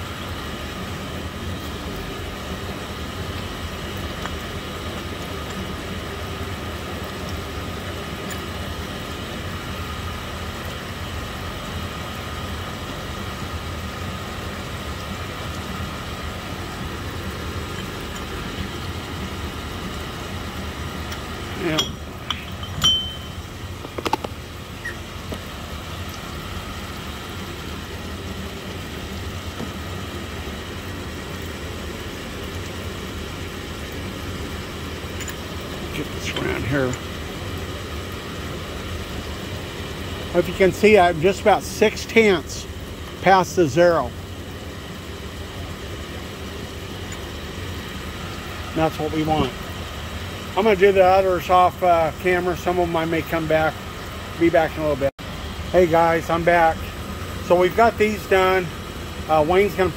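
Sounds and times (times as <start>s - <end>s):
sharp metallic clinks: 21.6s - 23.5s.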